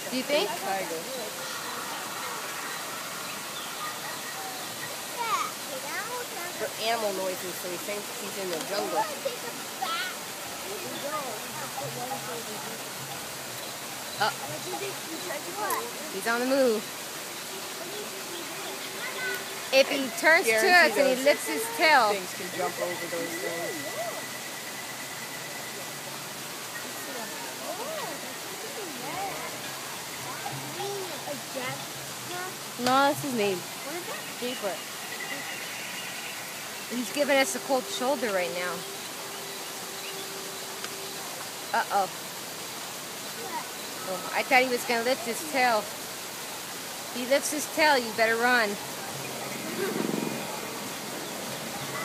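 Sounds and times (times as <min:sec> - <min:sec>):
background hiss: 0:00.0 - 0:52.0
rushing water noise: 0:00.0 - 0:52.0
thin high tone: 0:20.0 - 0:31.4.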